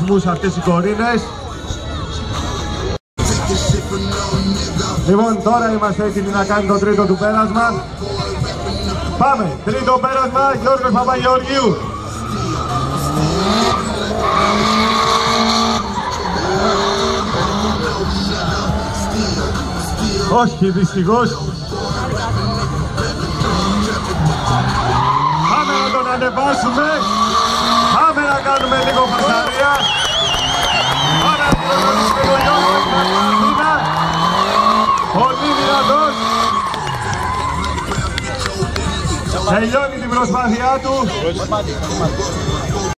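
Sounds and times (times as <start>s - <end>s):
car engine revving: 2.4s - 42.9s
tyres sliding and squealing: 11.4s - 20.2s, 22.1s - 38.4s.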